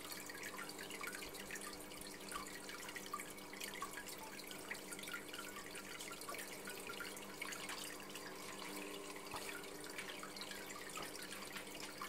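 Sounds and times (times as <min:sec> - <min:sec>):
water trickling into aquarium: 0:00.0 - 0:12.0.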